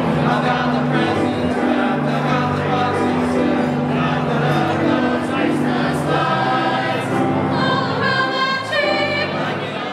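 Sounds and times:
choir singing: 0:00.0 - 0:09.9.

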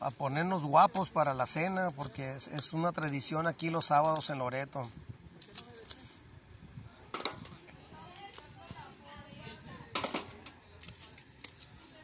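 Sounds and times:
metal tongs clinking on shells: 0:00.9 - 0:04.4, 0:05.4 - 0:06.1, 0:10.4 - 0:11.8.

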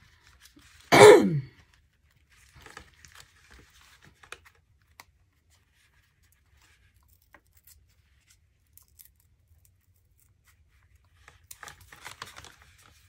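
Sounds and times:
paper card rustling and peeling: 0:00.0 - 0:00.9, 0:01.7 - 0:13.0.

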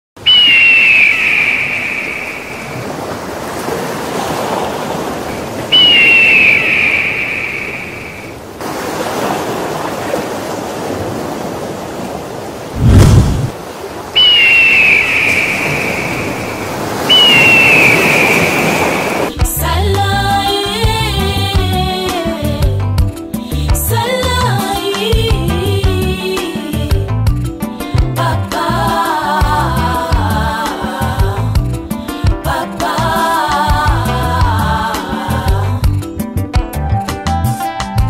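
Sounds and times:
bird of prey screaming: 0:00.2 - 0:02.8, 0:05.6 - 0:08.4, 0:14.2 - 0:19.3
steady rushing noise: 0:12.7 - 0:19.4.

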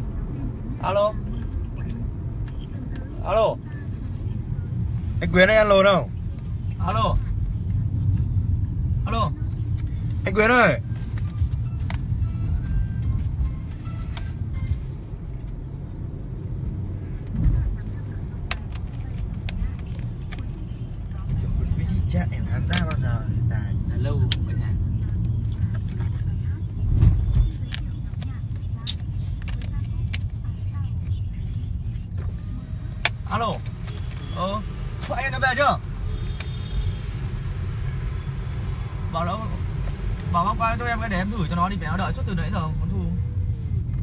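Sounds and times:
car road and engine rumble: 0:00.0 - 0:44.0.

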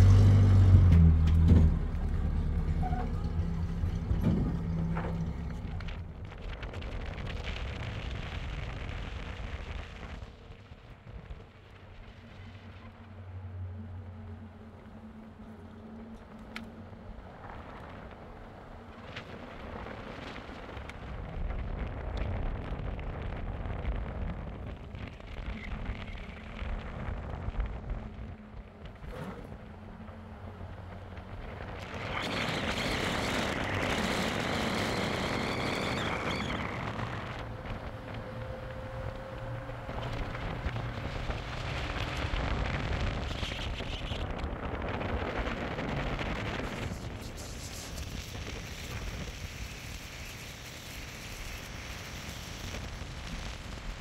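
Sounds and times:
faint whine: 0:00.0 - 0:54.0
vehicle engine rumble: 0:00.0 - 0:54.0
wind and road noise: 0:00.0 - 0:54.0.

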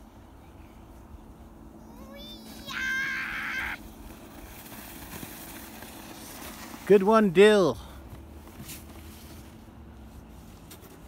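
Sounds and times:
child shrieking: 0:02.0 - 0:03.8.

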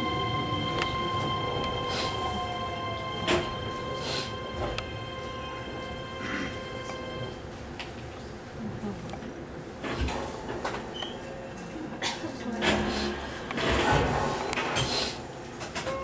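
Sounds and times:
train wheels rumbling: 0:00.0 - 0:08.3.

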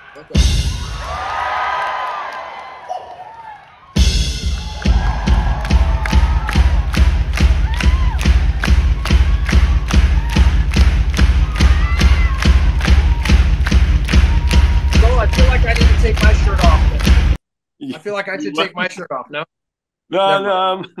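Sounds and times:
crowd cheering and whooping: 0:00.0 - 0:17.2
fast bass drum beat: 0:04.0 - 0:17.4.

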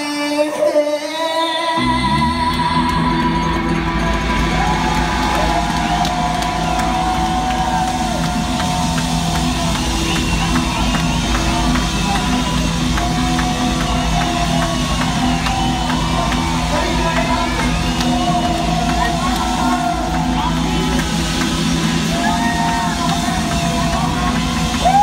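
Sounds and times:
crowd cheering: 0:01.8 - 0:25.0.

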